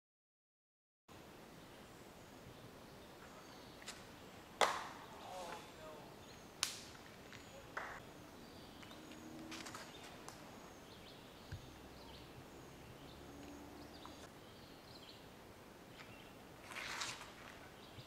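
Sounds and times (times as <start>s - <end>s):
disc golf drive thwacks: 4.6s - 5.6s.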